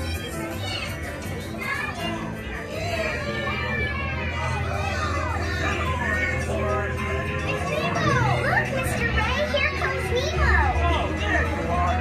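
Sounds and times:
children calling and squealing: 0.0 - 12.0.

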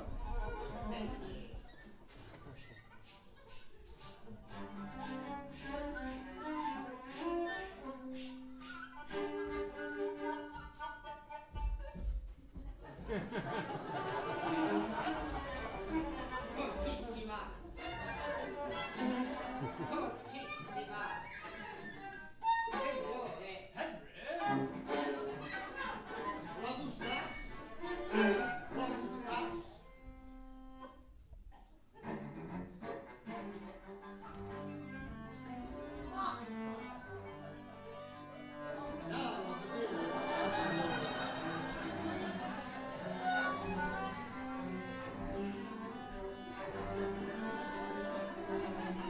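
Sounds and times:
viola and cello bowed: 3.8 - 12.1, 13.6 - 23.1, 24.4 - 31.1, 32.0 - 49.0.

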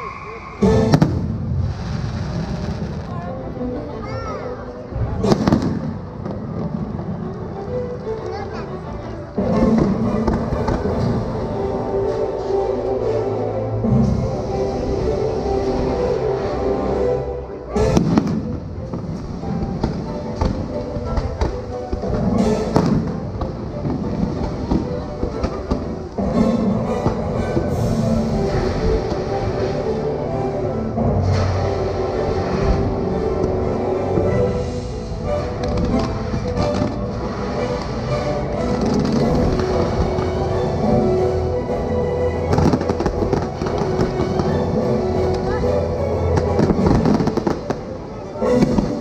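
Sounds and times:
fireworks bursting and crackling: 0.0 - 3.3, 4.9 - 8.6, 9.4 - 12.2, 17.7 - 30.2, 31.2 - 41.0, 42.5 - 45.6, 46.3 - 49.0
orchestral music: 0.0 - 49.0
fireworks bangs and thuds: 0.6 - 3.3, 5.0 - 7.2, 17.8 - 26.0.

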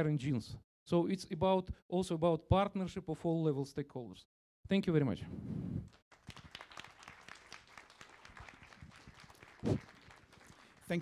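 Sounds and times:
audience applauding: 6.1 - 11.0.

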